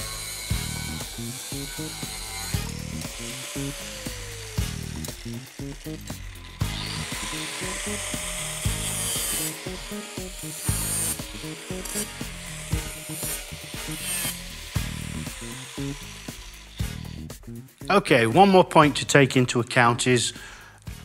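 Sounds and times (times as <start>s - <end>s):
angle grinder cutting steel: 0.0s - 18.8s.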